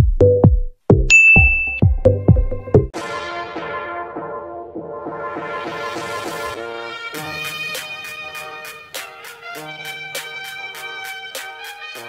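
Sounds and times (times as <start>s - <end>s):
electronic music with kick beats: 0.0s - 3.0s, 7.2s - 12.0s
bright bell-like ding: 1.1s - 1.9s.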